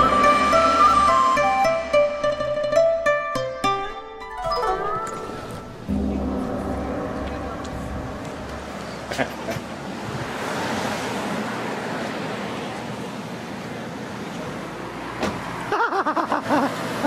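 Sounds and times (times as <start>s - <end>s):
car passing: 5.8s - 15.7s.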